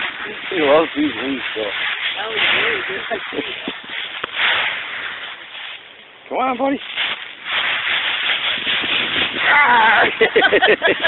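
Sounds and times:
dry leaves crackling: 0.0 - 11.0.

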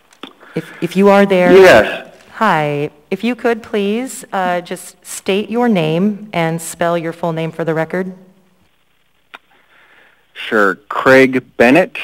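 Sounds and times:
woman speaking: 0.6 - 8.3.

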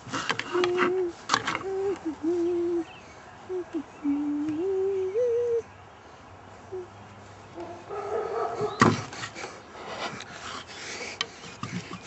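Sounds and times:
man humming a slow tune: 0.5 - 5.7, 6.7 - 7.0.

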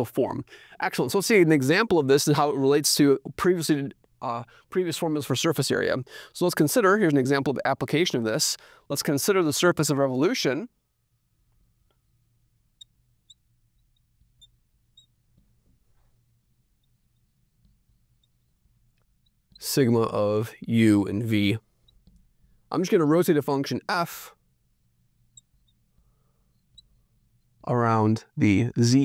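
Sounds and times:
marker squeaking on glass board: 11.5 - 20.2, 21.6 - 22.6, 24.3 - 27.7.

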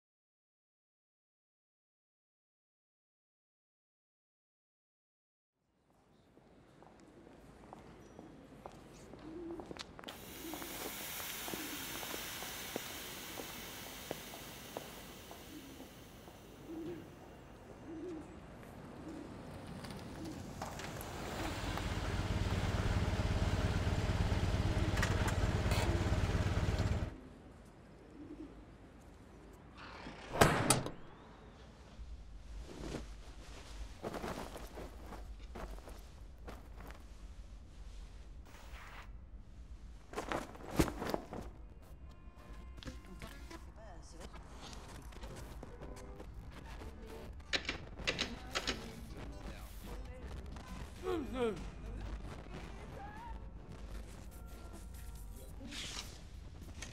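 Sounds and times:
loud rumble with low hum: 21.5 - 27.2
person saying a word: 51.0 - 51.8.

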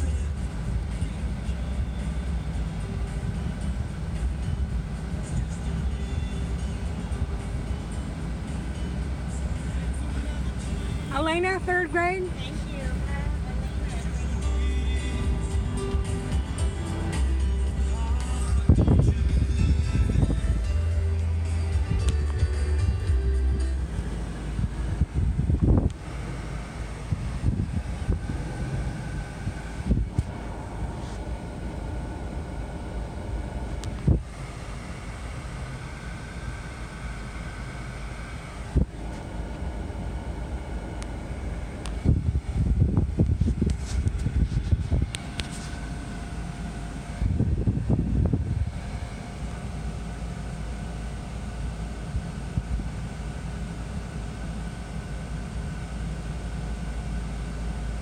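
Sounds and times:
car hum from inside cabin: 0.0 - 58.0.

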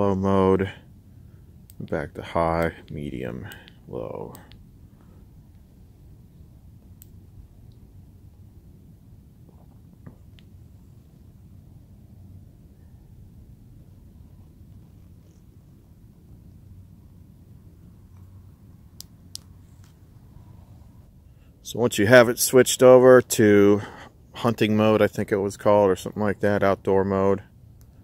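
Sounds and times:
low background rumble: 0.0 - 28.0.

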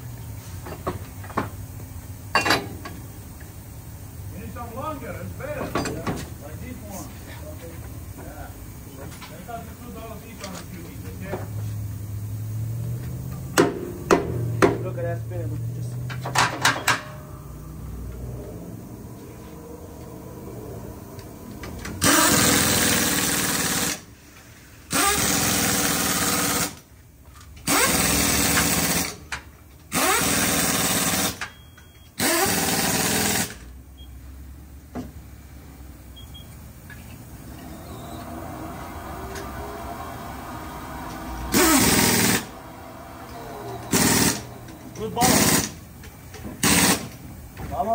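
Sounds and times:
wheel balancer whirring: 12.1 - 24.1, 36.0 - 47.6
loud bursts of rushing air: 37.2 - 47.4.

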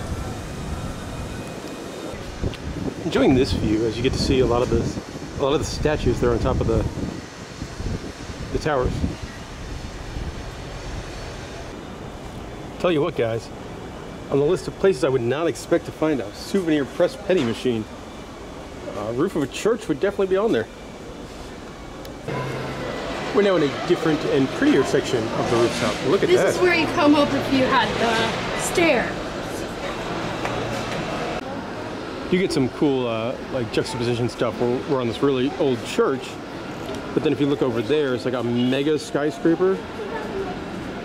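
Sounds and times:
wind buffeting microphone: 0.0 - 11.8
distant traffic hiss: 0.0 - 41.0.

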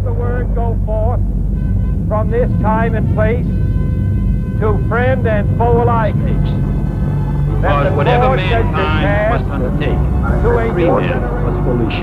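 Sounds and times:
spoken voice sample: 0.0 - 1.2, 2.1 - 3.4, 4.6 - 6.6, 7.6 - 12.0
deep rumbling drone: 0.0 - 12.0
high synth tones: 1.5 - 12.0.

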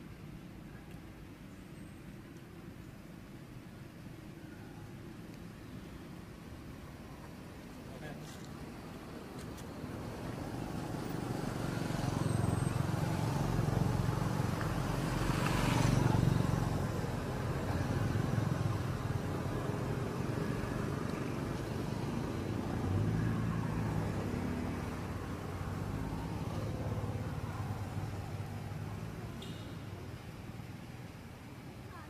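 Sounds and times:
engine hum: 5.4 - 32.0
vehicle passing: 8.8 - 31.1.

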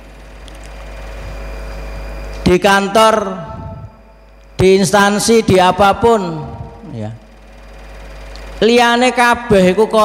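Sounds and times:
faint hum tones: 0.0 - 10.0
low steady rumble: 0.0 - 10.0.

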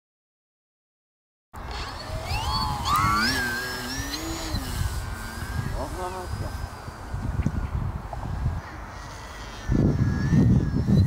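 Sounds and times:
electric motor and propeller whining: 1.6 - 11.0.

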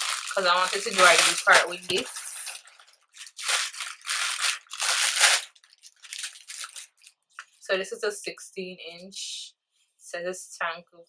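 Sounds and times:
packaging rustling: 3.2 - 7.2.

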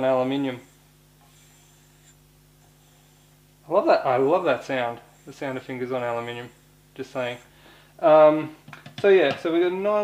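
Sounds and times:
steady low hum: 0.0 - 10.0
fingers rubbing on metal barrel: 4.0 - 7.5.

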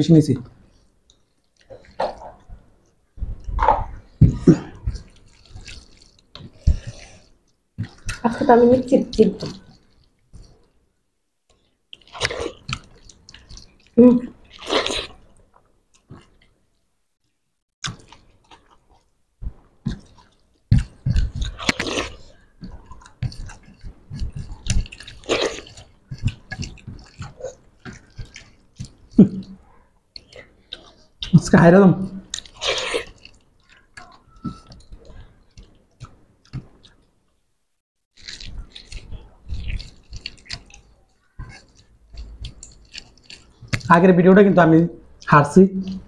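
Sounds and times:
chewing and mouth sounds: 0.4 - 10.8, 11.5 - 16.6, 17.8 - 37.2, 38.1 - 46.0
fingers squishing rice: 38.1 - 44.2.

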